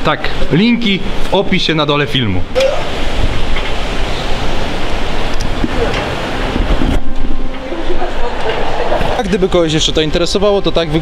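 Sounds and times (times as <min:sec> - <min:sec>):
fast river rushing: 0:00.0 - 0:11.0.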